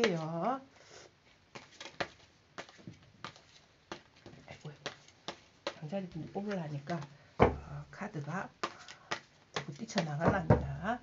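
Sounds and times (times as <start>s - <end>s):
cards being shuffled: 1.5s - 5.8s.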